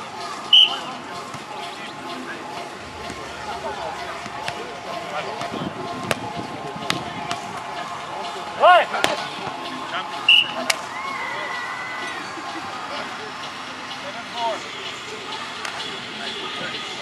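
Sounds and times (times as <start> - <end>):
background voices: 0.0 - 8.5
hands slapping a volleyball: 5.4 - 6.3.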